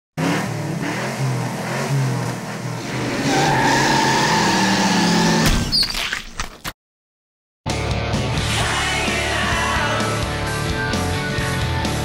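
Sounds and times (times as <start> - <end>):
car engine revving: 0.2 - 5.4.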